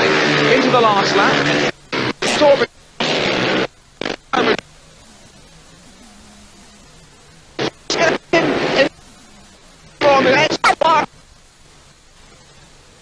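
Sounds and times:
faint hum: 0.0 - 13.0
low tape hiss: 0.0 - 13.0.

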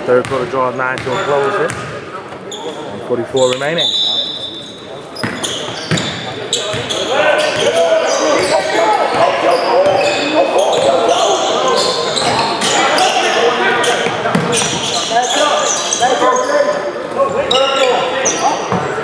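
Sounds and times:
voices echoing: 0.0 - 19.0
sneakers squeaking: 0.3 - 19.0.

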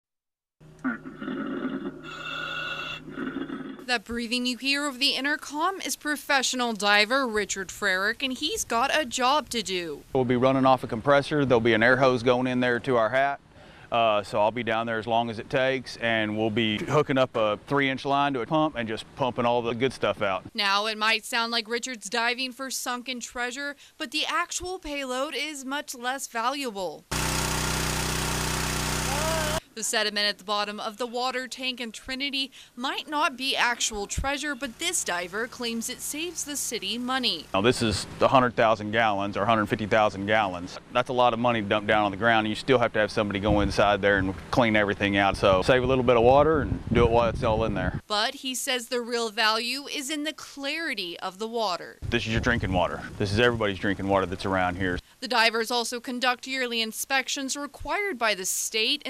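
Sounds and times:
diver breathing in helmet: 1.1 - 3.8
engine humming: 27.1 - 29.6
water gushing from hose: 27.1 - 29.6.

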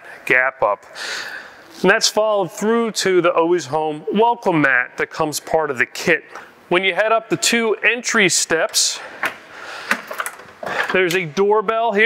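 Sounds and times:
door and metal steps clicking: 8.6 - 11.2.

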